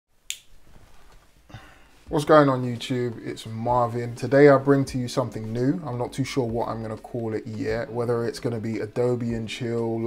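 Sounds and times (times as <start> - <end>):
finger snap: 0.3 - 0.5.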